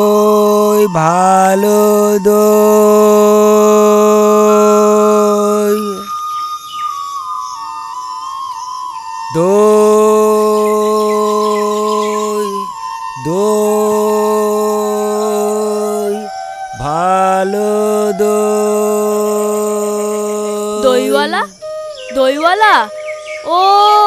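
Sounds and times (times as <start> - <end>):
wavering flute-like melody: 0.0 - 24.0.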